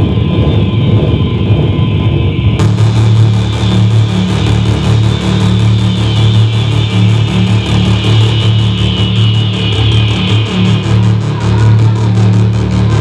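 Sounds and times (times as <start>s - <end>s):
pulsing bass line: 0.0s - 13.0s
electronic music: 2.6s - 13.0s.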